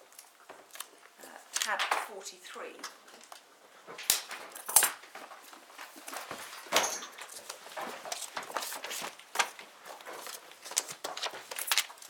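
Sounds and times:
paper pages rustling: 3.1s - 12.0s.

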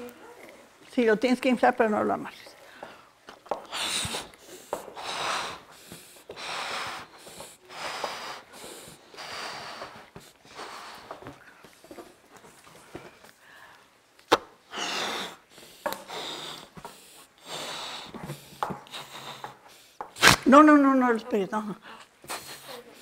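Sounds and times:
quick breaths drawn: 2.6s - 11.6s, 14.7s - 20.3s
breathy puffs into balloon: 3.6s - 11.4s, 14.6s - 20.4s, 22.0s - 23.0s.

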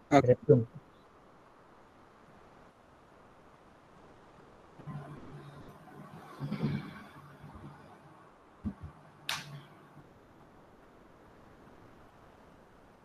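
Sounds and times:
sharp click: 8.8s - 9.6s.

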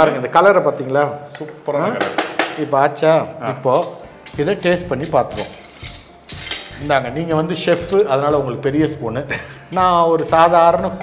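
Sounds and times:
man talking: 0.0s - 5.6s, 6.8s - 11.0s
metal utensil clinking steel pot: 3.7s - 6.8s.

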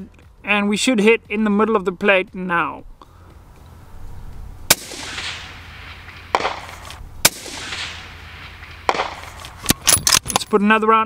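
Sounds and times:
rifle shots with echo: 4.7s - 9.9s.

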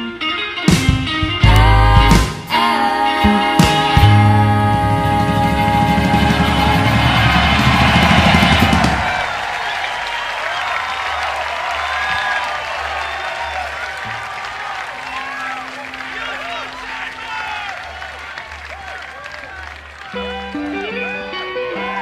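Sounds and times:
rock band playing live: 0.0s - 9.2s, 20.1s - 22.0s
crowd cheering and applauding: 1.4s - 22.0s.

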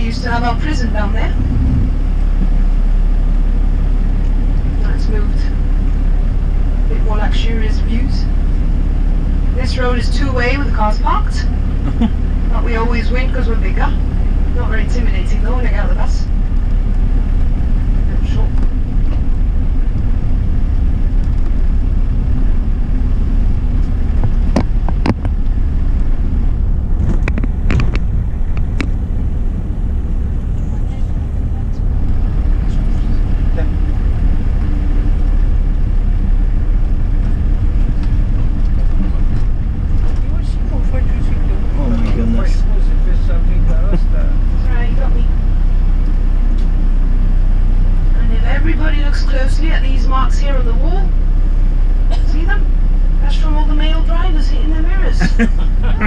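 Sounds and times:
minibus engine rumble: 0.0s - 56.0s
road noise: 0.0s - 56.0s.

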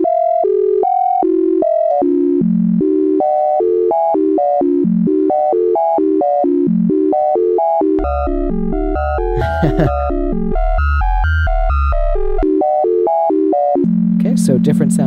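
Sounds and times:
sequenced electronic notes: 2.6s - 15.0s.

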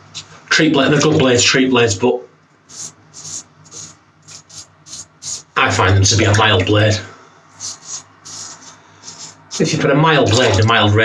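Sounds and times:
razor scraping stubble: 2.7s - 5.6s, 7.6s - 9.8s.

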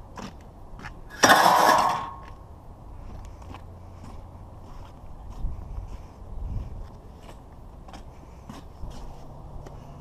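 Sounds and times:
steel wire crashing onto scrap metal: 1.1s - 2.2s.

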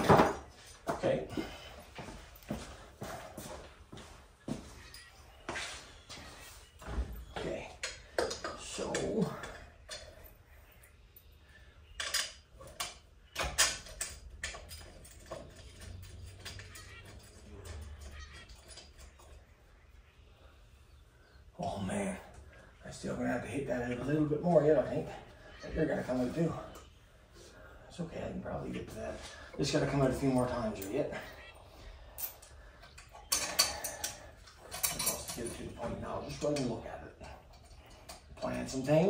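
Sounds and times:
metal hand tools clinking: 11.9s - 19.5s, 32.1s - 39.0s.

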